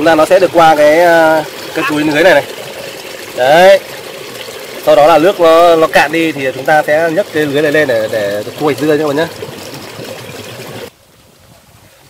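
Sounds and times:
water running through spillway: 0.0s - 12.0s.

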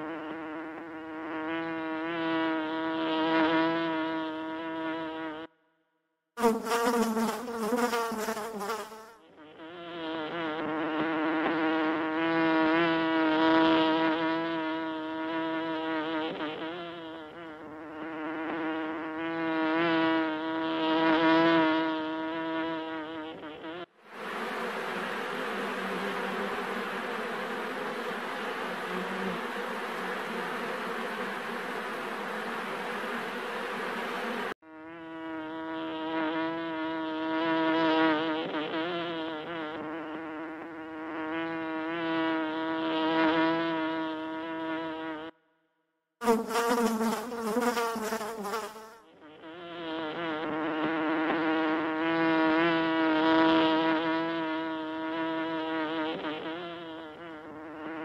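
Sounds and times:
honey bees buzzing: 0.0s - 5.5s, 6.4s - 45.3s, 46.2s - 58.0s.

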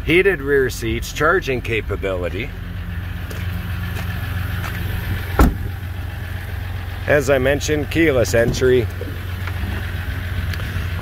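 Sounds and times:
diesel engine idling hum: 0.0s - 11.0s
truck door thump: 4.8s - 5.9s.

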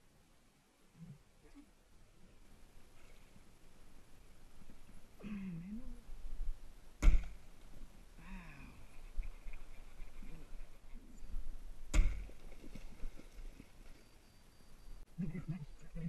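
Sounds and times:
sharp knocks: 7.0s - 7.4s, 11.9s - 12.4s.

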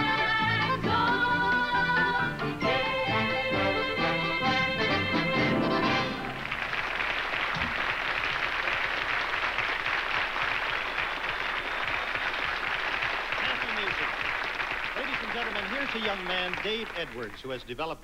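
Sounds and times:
accordion polka band: 0.0s - 6.5s
audience applauding: 5.8s - 17.9s
man speaking: 13.4s - 14.1s, 15.0s - 18.0s.

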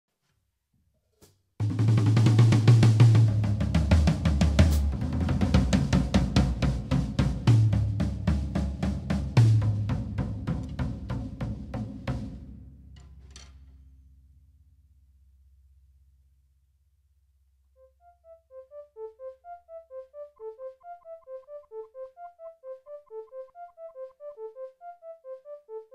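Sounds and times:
acoustic drum kit playing: 1.6s - 13.0s.

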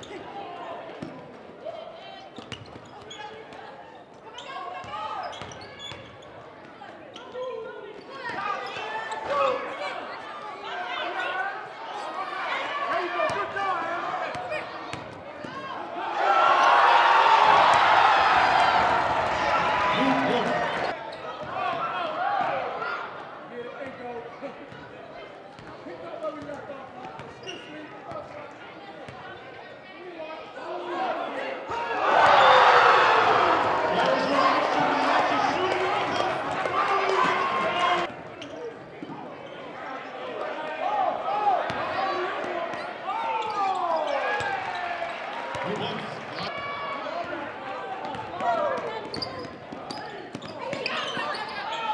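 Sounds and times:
players' voices: 0.0s - 51.9s
crowd cheering and shouting: 8.2s - 23.2s, 30.6s - 38.1s, 39.9s - 49.2s.

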